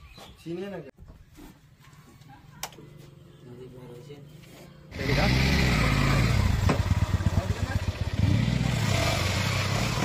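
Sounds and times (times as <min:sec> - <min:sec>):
small motorcycle engine running: 0:04.9 - 0:10.0.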